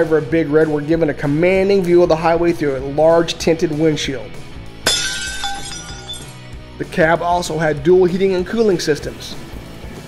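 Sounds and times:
soft background music: 0.0s - 10.0s
glass shattering: 4.8s - 6.5s.

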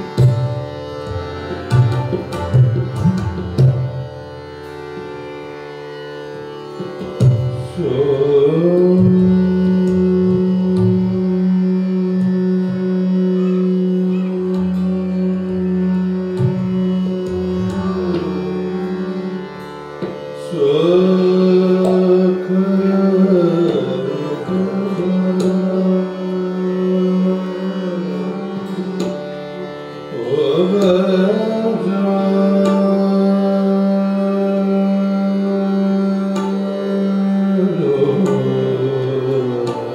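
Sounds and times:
tabla stroke: 0.0s - 4.2s
harmonium: 0.0s - 39.9s
tanpura drone: 0.0s - 39.9s
man singing a long note: 7.8s - 19.5s, 20.4s - 28.9s, 30.1s - 39.9s.

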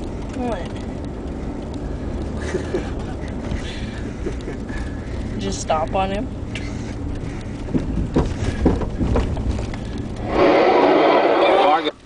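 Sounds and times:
vehicle driving rumble: 0.0s - 12.0s
car radio sports broadcast: 10.0s - 12.0s.

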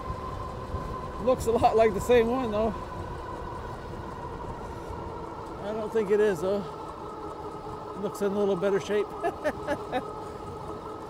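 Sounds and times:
wind on microphone: 0.0s - 8.2s
thin steady whine: 0.0s - 11.0s
tyres rolling on asphalt: 0.0s - 11.0s.

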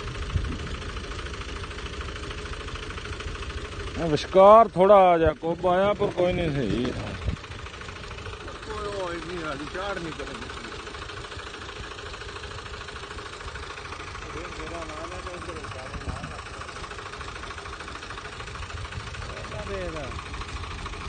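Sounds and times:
tractor diesel engine under load: 0.0s - 21.0s.

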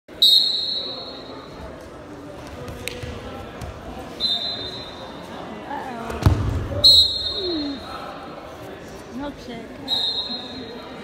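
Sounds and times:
referee's whistle blast: 6.8s - 7.8s.

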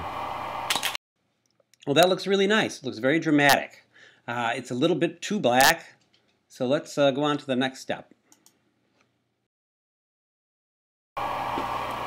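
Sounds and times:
camera shutter clatter: 0.7s - 1.0s.

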